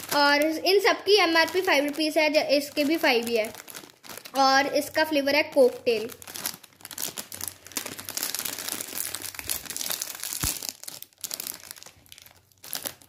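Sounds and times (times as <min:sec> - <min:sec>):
plastic snack packet crinkling: 0:00.0 - 0:13.0.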